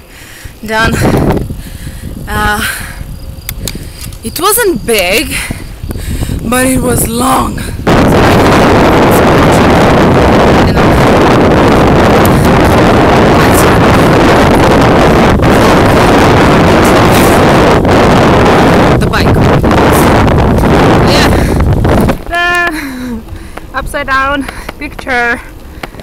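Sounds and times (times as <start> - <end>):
wind on microphone: 0.0 - 26.0.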